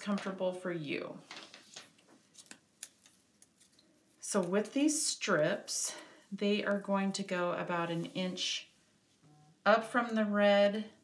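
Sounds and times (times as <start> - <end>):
paper rustling: 1.2 - 4.7.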